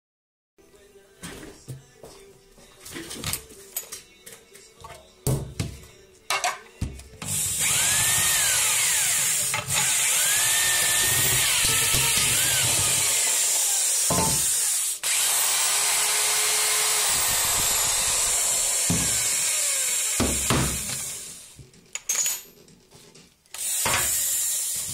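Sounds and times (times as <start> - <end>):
electric drill running: 7.3 - 21.6, 23.6 - 24.9.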